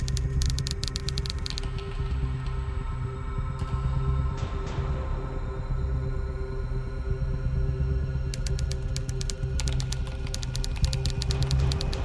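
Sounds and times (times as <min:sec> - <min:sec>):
computer keyboard typing: 0:00.0 - 0:02.1, 0:08.4 - 0:12.0
low droning music: 0:00.0 - 0:12.0.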